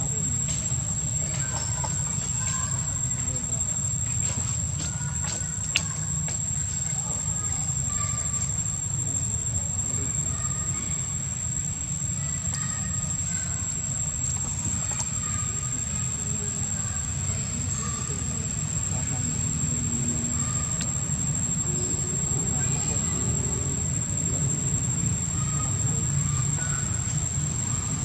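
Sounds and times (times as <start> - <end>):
high-pitched insect drone: 0.0 - 28.0.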